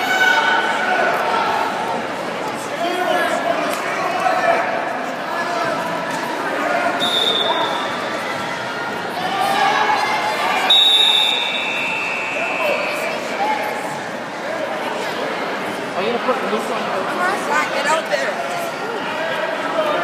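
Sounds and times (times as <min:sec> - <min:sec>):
voices and chatter: 0:00.0 - 0:20.0.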